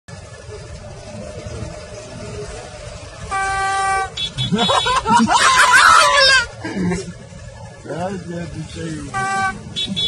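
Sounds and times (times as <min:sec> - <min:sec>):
horn blast: 0:03.0 - 0:05.1, 0:09.0 - 0:10.0.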